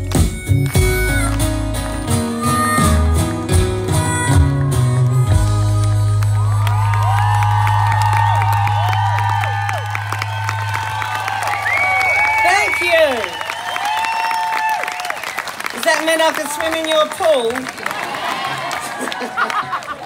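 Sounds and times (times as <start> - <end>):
audience clapping: 0.0 - 20.0
live band with acoustic guitars: 0.0 - 20.0
audience cheering and whistling: 6.2 - 15.7.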